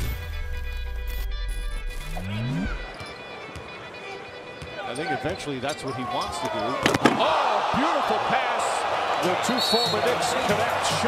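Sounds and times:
arena crowd noise: 2.8 - 11.0.

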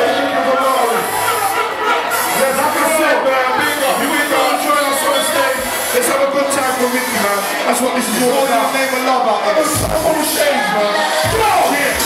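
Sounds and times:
crowd noise: 0.0 - 12.0
voices from the stage: 0.0 - 12.0
loud live music in a hall: 8.1 - 12.0.

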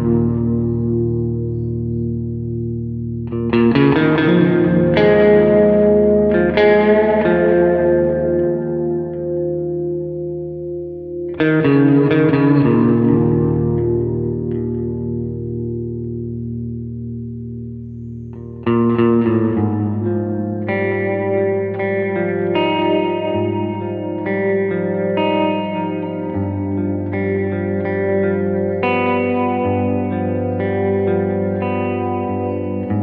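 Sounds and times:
electric guitar chords and notes: 0.0 - 33.0.

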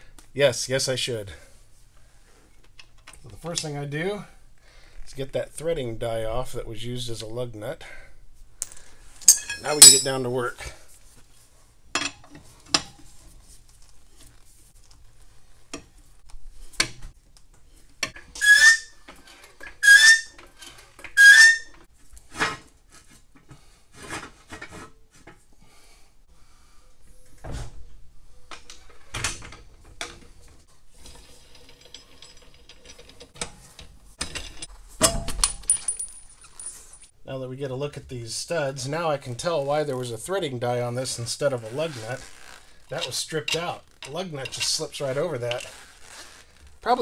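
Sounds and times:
hand tools clinking on metal: 8.6 - 10.3
tool strokes with squeak: 18.4 - 19.0, 19.7 - 20.4, 21.2 - 21.8.

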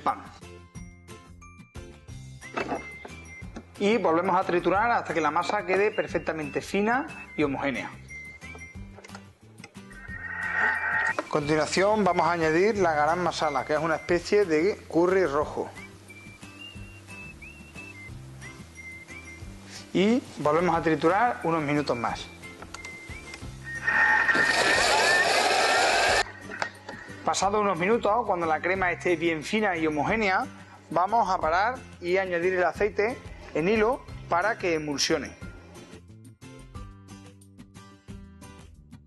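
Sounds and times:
background music: 0.0 - 39.0
food processor motor blending: 24.2 - 26.3.

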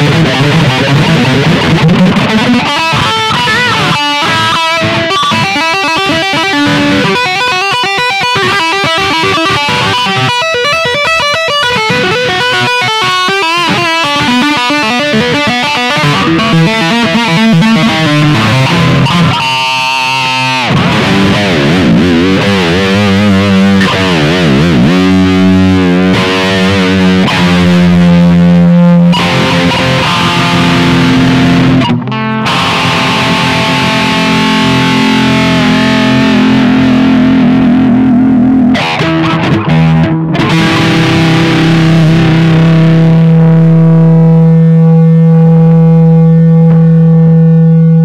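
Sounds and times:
distorted electric guitar: 0.0 - 48.0.

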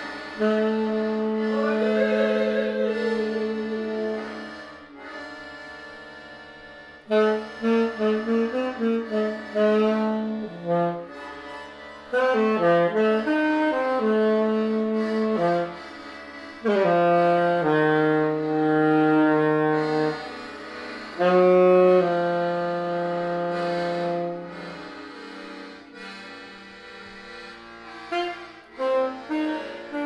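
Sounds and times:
saxophone-like melody: 0.0 - 30.0.

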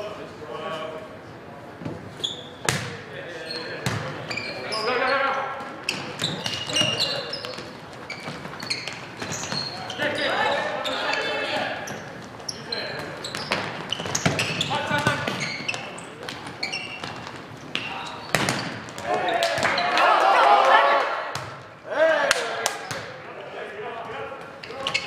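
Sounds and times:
sneakers squeaking on hardwood: 1.8 - 19.9, 24.4 - 25.0
volleyball being hit: 17.8 - 19.8
players shouting: 19.0 - 22.9.

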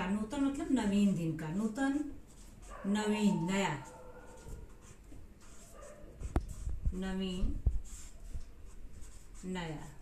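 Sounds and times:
marker writing on paper: 1.8 - 10.0.

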